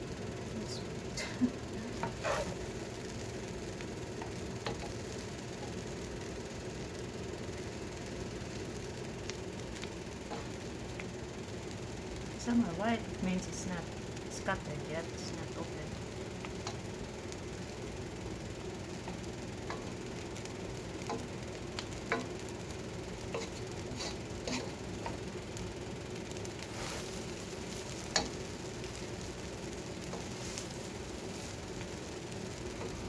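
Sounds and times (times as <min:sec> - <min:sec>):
noodles sizzling in a pot: 0:00.0 - 0:33.0.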